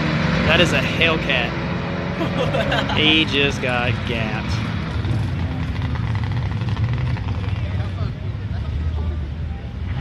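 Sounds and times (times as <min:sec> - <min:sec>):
distant racing car engines droning: 0:00.0 - 0:10.0.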